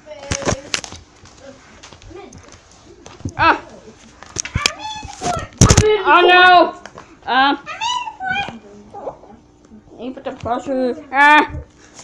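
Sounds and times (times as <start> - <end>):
child murmuring: 1.4 - 11.7.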